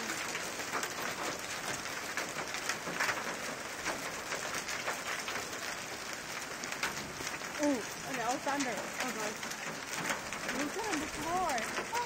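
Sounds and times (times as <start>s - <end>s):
hail striking cars and pavement: 0.0s - 12.0s.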